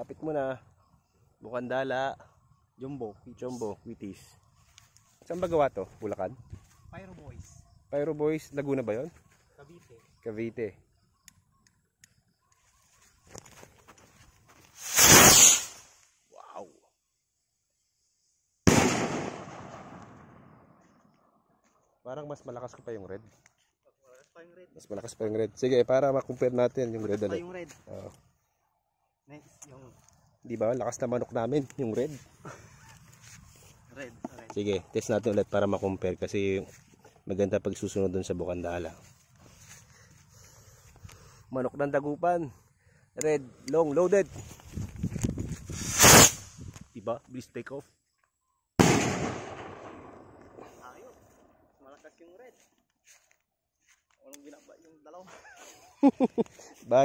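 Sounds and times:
rocket crackling fizz: 14.7 - 16.1, 18.7 - 20.7, 45.6 - 46.6
rocket launching rushing hiss: 14.8 - 16.0, 45.7 - 46.6
skyrocket bang: 14.9 - 15.8, 18.7 - 20.5, 45.8 - 46.5, 48.8 - 50.3
rolling echo: 18.7 - 21.3, 48.8 - 50.8.

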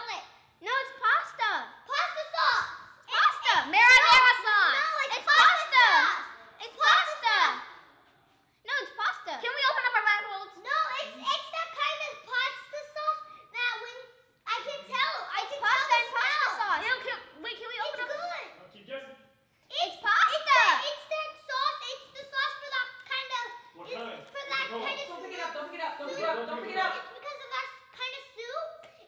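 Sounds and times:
children talking and exclaiming: 0.0 - 18.6, 19.6 - 29.0.

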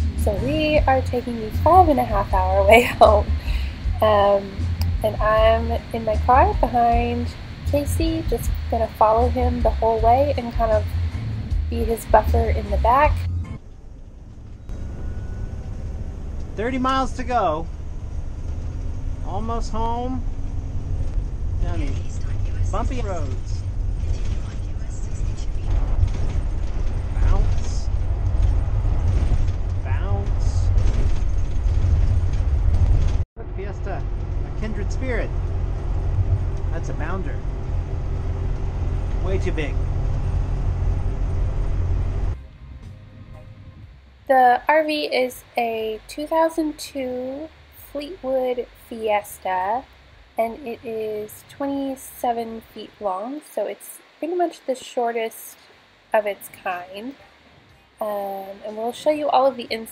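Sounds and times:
vehicle road and engine rumble: 0.0 - 54.2.

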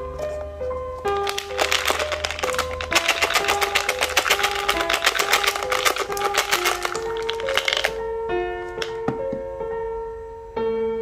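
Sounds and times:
simple background music: 0.0 - 11.0
candy rattling out of plastic container: 1.1 - 8.0.

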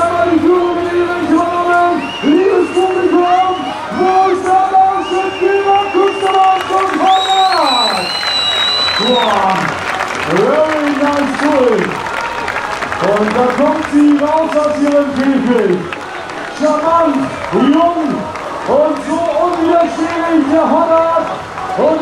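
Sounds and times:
man calling over loudspeaker: 0.0 - 12.1, 12.9 - 22.0
crowd applause and cheering: 0.0 - 22.0.

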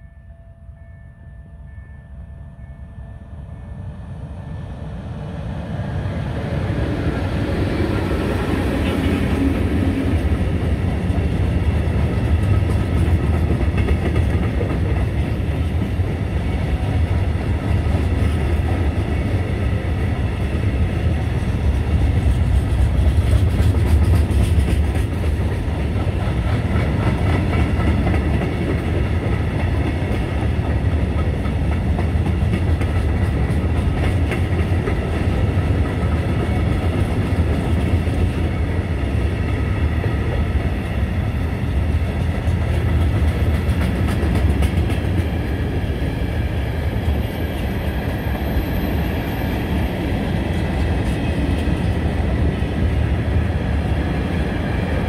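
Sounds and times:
ringing tones from wheels: 0.0 - 4.0
train wheels rumbling on rails: 3.7 - 55.0
wheels clacking over rail joints: 42.1 - 45.4.

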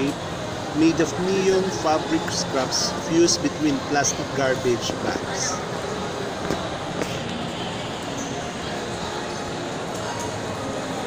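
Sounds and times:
shopping mall background din: 0.0 - 11.0.

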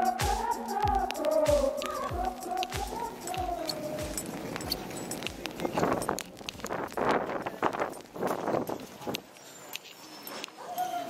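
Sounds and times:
footsteps on wet pavement: 0.0 - 10.7.

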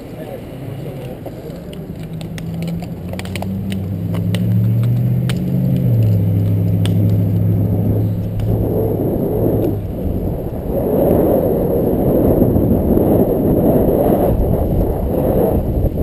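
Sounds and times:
engine humming: 0.0 - 16.0
wind buffeting microphone: 0.0 - 16.0
sharp clicks: 1.0 - 7.5.

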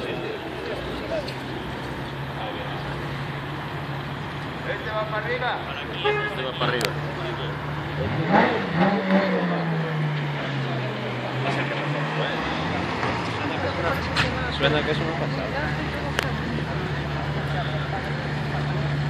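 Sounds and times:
car engine revving: 0.0 - 19.0
sports car engines running: 0.0 - 19.0.

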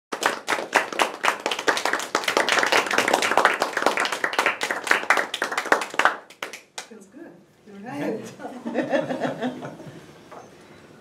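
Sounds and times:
people clapping: 0.1 - 7.0.

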